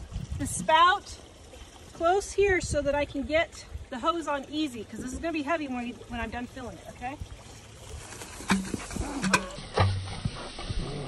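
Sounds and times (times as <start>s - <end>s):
footsteps through dry grass: 7.5s - 9.2s.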